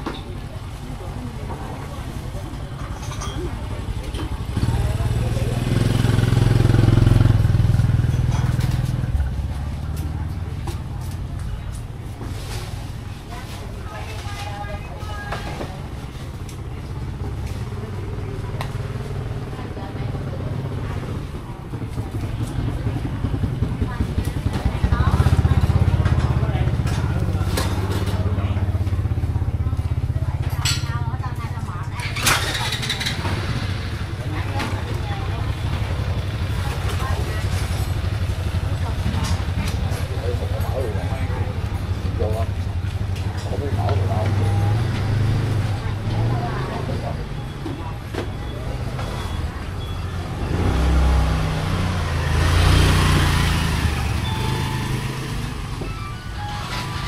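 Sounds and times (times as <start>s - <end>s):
chatter of voices: 0.0s - 57.0s
scooter engines rumbling: 0.0s - 57.0s.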